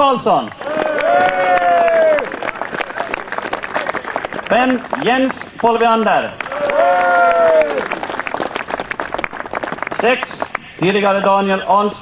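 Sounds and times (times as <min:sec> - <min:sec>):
crowd applauding: 0:00.4 - 0:10.6.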